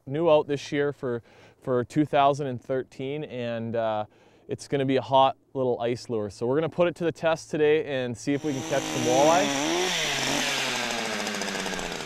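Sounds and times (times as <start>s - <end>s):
auger bit boring ice: 8.4s - 12.0s
ice auger engine running: 8.4s - 12.0s.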